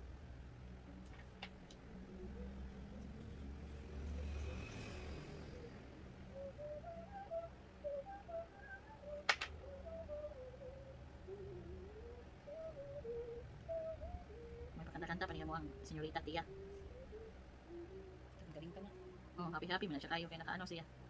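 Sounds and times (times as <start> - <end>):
steady low hum: 0.0 - 21.0
faint wavering tune: 1.8 - 20.7
sharp click: 9.3 - 9.5.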